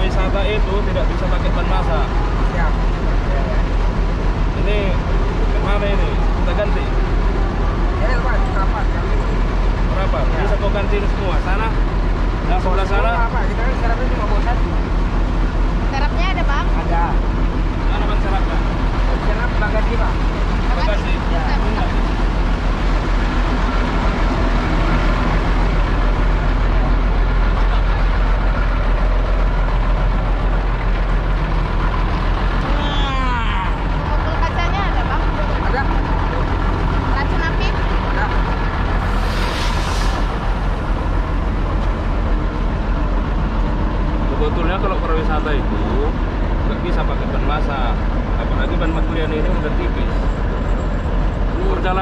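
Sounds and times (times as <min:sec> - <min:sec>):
people talking: 0:00.0 - 0:03.8, 0:04.5 - 0:07.0, 0:07.9 - 0:11.8, 0:12.5 - 0:14.7, 0:15.9 - 0:17.2, 0:17.8 - 0:22.1, 0:32.6 - 0:38.6, 0:44.3 - 0:50.2, 0:51.5 - 0:52.0
bus engine idling: 0:00.0 - 0:52.0
air hiss: 0:39.0 - 0:41.0.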